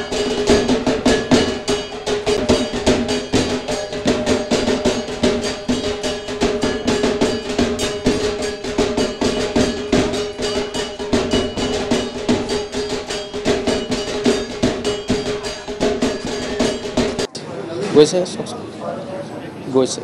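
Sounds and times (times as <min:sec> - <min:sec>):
fast drumbeats: 0:00.0 - 0:17.3
steady held tone: 0:00.0 - 0:17.3.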